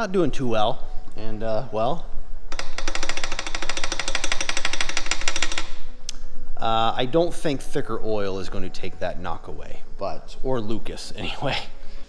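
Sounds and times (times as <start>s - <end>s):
engine with rapid rod knock: 2.5s - 5.8s.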